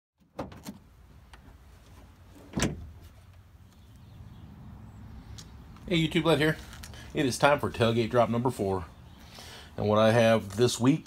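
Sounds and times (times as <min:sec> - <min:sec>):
tailgate clunking open: 0:00.2 - 0:00.9, 0:02.3 - 0:03.0.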